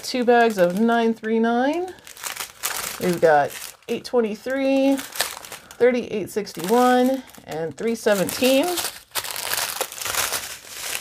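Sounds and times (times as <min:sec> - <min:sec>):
plastic bags crinkling: 0:00.0 - 0:11.0.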